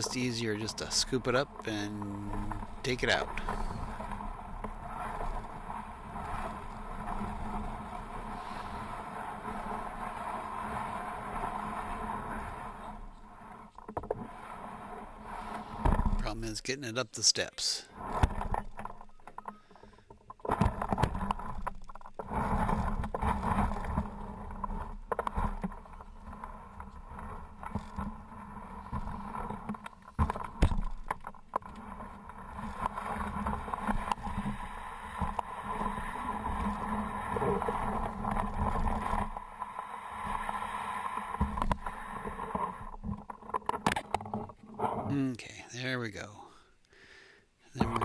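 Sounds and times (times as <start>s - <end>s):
sled scraping and bumping: 0.0s - 45.3s.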